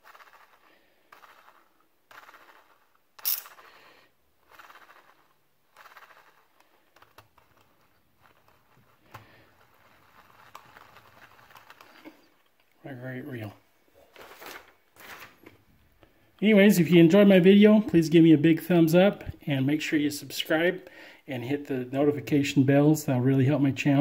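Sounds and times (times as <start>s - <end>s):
fishing reel whirring: 0.0s - 3.7s, 4.5s - 6.6s.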